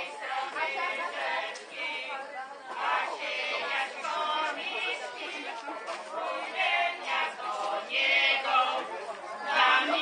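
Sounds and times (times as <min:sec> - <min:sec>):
women's choir singing a cappella: 0:00.0 - 0:10.0.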